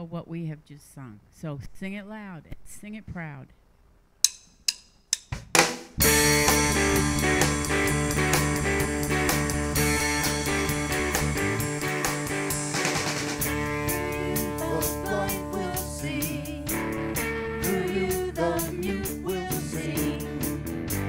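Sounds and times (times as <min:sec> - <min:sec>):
band with drums guitar and bass: 0:05.3 - 0:21.0.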